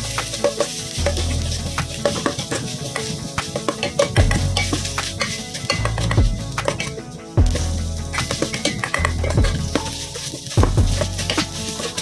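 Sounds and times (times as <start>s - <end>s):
background music with low bass: 0.0s - 12.0s
paste sizzling in hot oil: 0.0s - 12.0s
spatula scraping metal pot: 0.0s - 12.0s.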